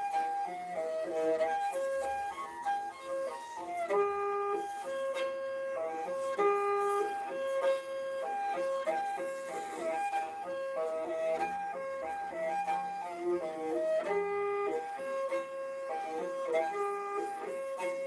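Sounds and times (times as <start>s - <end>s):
bowed fiddle in gallop rhythm: 0.0s - 18.0s.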